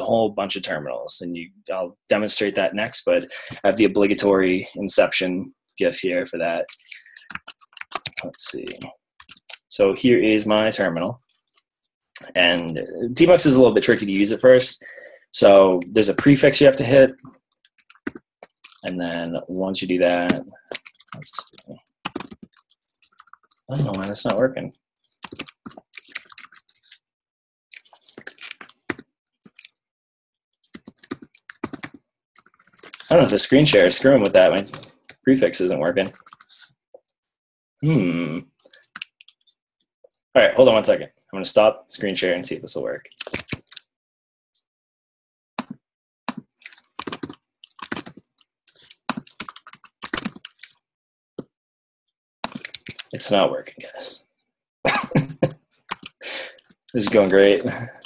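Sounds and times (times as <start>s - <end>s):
computer keyboard typing: 6.6s - 9.7s, 15.4s - 19.0s, 20.1s - 24.4s, 25.1s - 27.0s, 27.8s - 29.7s, 30.7s - 33.4s, 36.0s - 36.6s, 38.7s - 39.5s, 43.2s - 43.8s, 46.3s - 50.8s, 52.4s - 53.1s, 55.5s - 57.8s.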